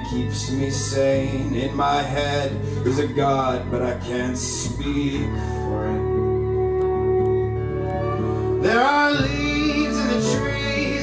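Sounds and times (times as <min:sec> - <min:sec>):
acoustic guitar chords: 0:00.0 - 0:11.0
upright bass: 0:00.0 - 0:11.0.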